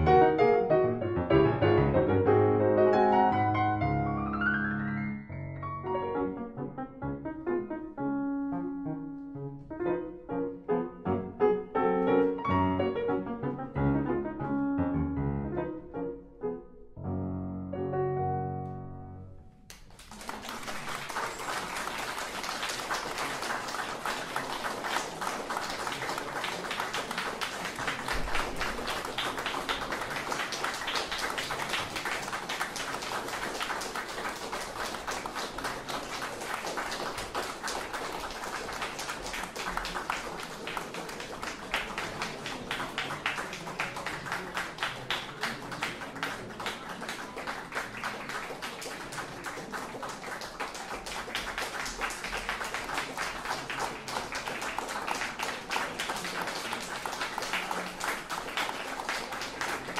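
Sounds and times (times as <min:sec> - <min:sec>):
small audience applauding: 0:19.7 - 0:59.9.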